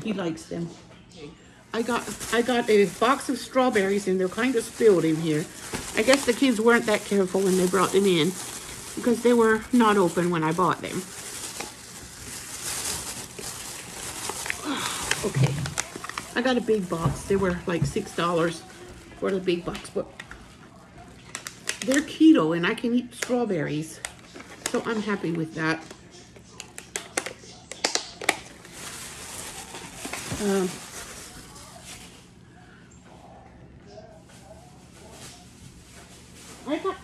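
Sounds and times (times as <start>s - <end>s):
plastic bag rustling: 1.7s - 22.4s, 27.9s - 32.4s, 34.2s - 37.0s.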